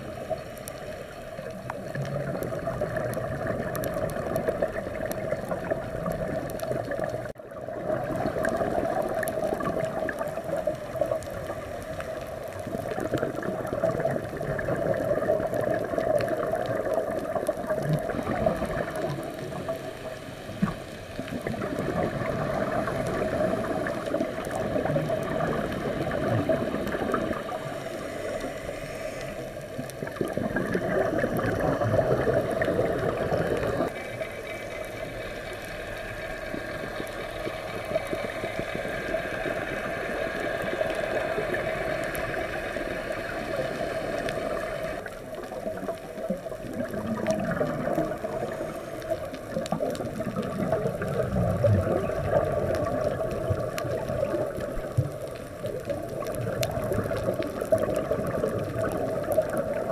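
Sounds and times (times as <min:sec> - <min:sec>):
underwater bubbles gurgling: 0:00.0 - 0:59.9.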